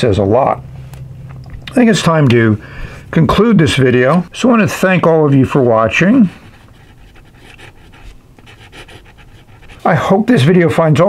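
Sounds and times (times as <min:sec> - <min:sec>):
man speaking: 0:00.0 - 0:00.6, 0:01.7 - 0:06.4, 0:09.8 - 0:11.0
pen nib scratching on paper: 0:06.4 - 0:10.0.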